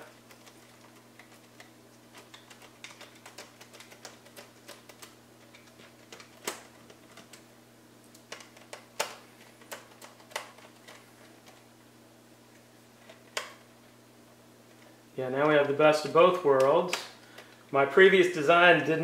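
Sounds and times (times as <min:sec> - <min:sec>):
parts being handled: 0:00.0 - 0:11.8, 0:12.5 - 0:14.0.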